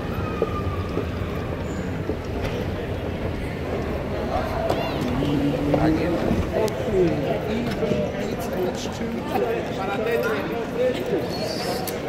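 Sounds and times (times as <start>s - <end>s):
moving walkway rumble: 0.0s - 9.6s
busy terminal ambience: 0.0s - 12.0s.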